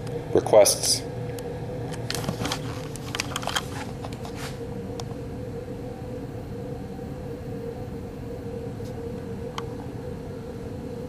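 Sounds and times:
mechanical room hum: 0:00.0 - 0:11.0.

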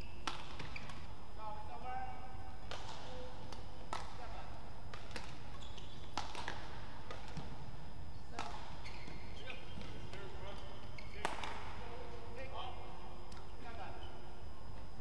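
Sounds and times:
shoes squeaking on court: 0:00.0 - 0:01.1, 0:05.0 - 0:12.1
racket hitting shuttlecock: 0:00.2 - 0:01.0, 0:02.6 - 0:04.3, 0:04.9 - 0:07.6, 0:08.4 - 0:10.6.

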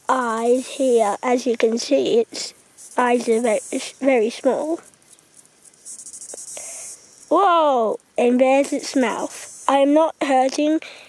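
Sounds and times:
insect pulsing trill: 0:00.0 - 0:11.0.

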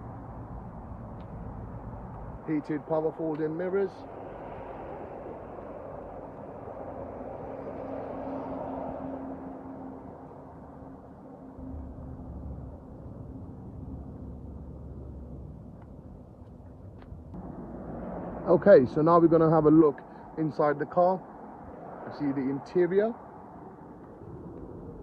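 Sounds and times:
vehicle passing by: 0:00.0 - 0:15.8, 0:17.3 - 0:25.0
low rumble: 0:10.1 - 0:20.4, 0:23.3 - 0:25.0.

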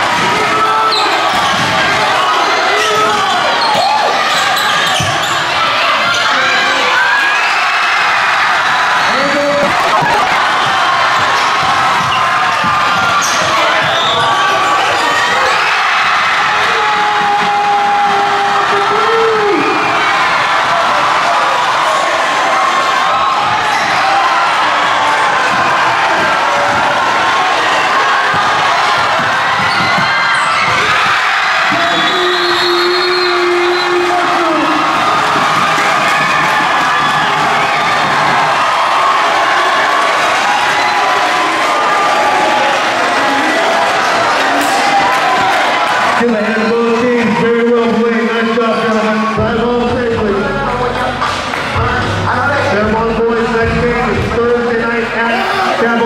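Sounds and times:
crowd cheering and shouting: 0:00.0 - 0:56.0
sneakers squeaking: 0:00.8 - 0:06.4, 0:08.6 - 0:15.8, 0:23.2 - 0:24.2, 0:28.3 - 0:34.0.

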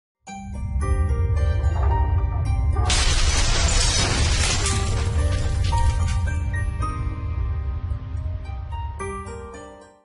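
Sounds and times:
glass shattering effect: 0:02.8 - 0:06.6.

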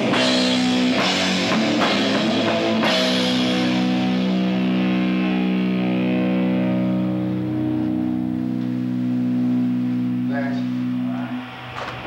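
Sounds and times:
distorted electric guitar and bass chord: 0:00.0 - 0:12.0.

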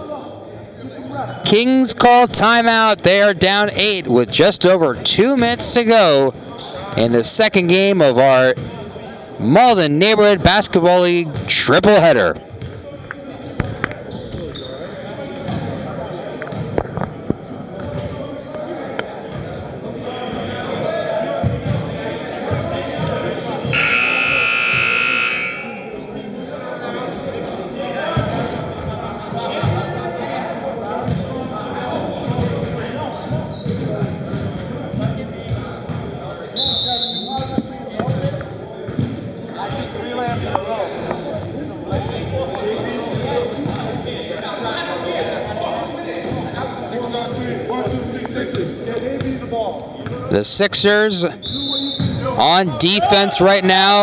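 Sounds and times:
voices chattering: 0:00.0 - 0:54.0
scoreboard buzzer: 0:23.7 - 0:26.0.

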